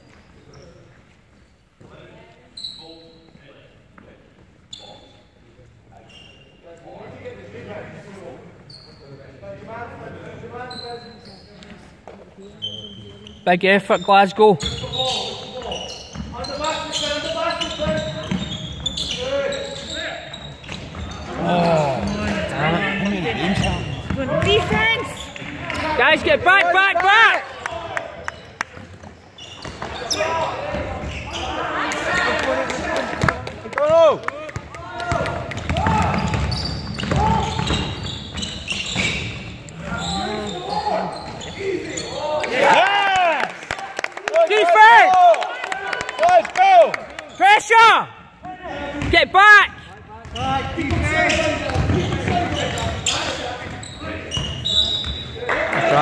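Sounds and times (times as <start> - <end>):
shoes squeaking on court: 0.0 - 5.4, 6.0 - 6.6, 8.6 - 9.2, 10.6 - 26.4, 28.2 - 32.4, 35.6 - 42.4, 50.2 - 56.0
basketball bouncing: 23.5 - 25.0, 34.6 - 38.0, 50.2 - 52.9.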